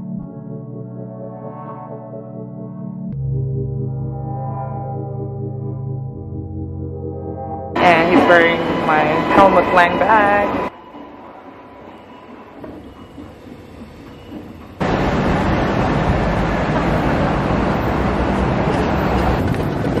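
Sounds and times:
city street and traffic noise: 7.8 - 10.7, 14.3 - 20.0
quiet station ambience: 7.8 - 19.6.

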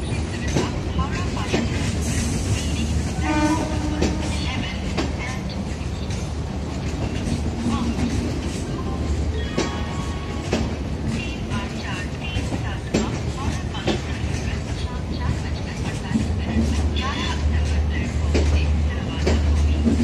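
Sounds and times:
train coaches rumbling past: 0.0 - 20.0
wheels clacking over rail joints: 0.0 - 20.0
train horn: 3.2 - 4.4.

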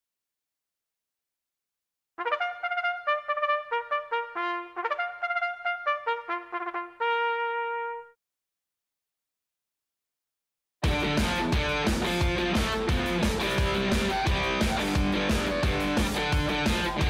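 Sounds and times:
trumpet bugle call: 2.2 - 8.2.

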